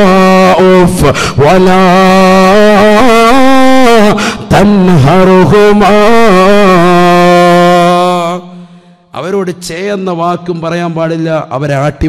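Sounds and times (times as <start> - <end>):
man chanting through a microphone: 0.0 - 12.0.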